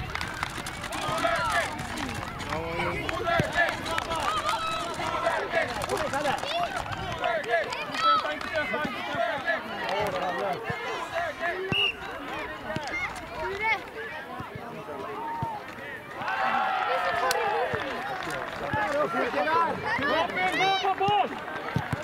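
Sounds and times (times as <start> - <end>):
voices shouting and calling: 0.8 - 22.0.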